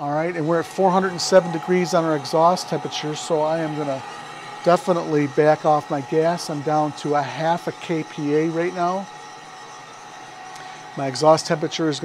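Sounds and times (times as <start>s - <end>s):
coffee roaster burner and drum: 0.0s - 12.0s.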